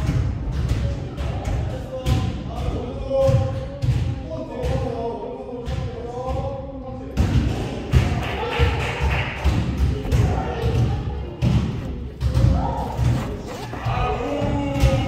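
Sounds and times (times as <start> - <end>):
voices: 4.4 - 15.0
basketball bouncing on hardwood: 9.5 - 13.9.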